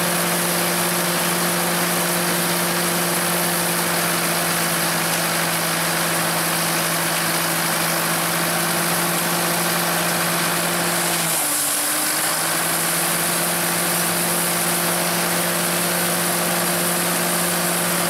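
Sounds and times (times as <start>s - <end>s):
tractor engine running: 0.0s - 18.0s.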